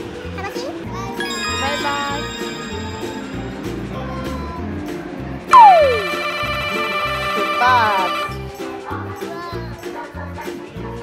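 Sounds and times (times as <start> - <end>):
background music with steady beat: 2.4 - 11.0
short wavering tone effect: 5.5 - 8.3
downward sliding whistle effect: 5.5 - 8.4.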